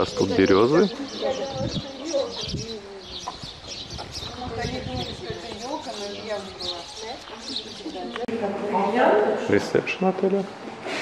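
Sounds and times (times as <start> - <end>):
birds chirping: 0.0 - 9.0
people talking indistinctly: 0.0 - 10.6.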